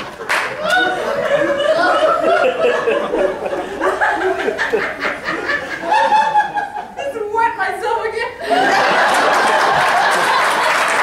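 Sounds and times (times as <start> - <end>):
audience applause: 0.0 - 1.2, 8.6 - 11.0
audience laughing: 0.0 - 7.0, 8.4 - 11.0.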